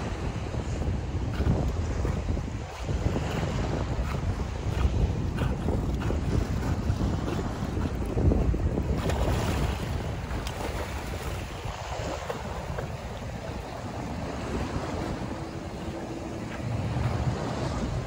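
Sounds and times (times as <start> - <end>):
choppy sea water sloshing: 0.0 - 18.0
wind buffeting microphone: 0.0 - 18.0.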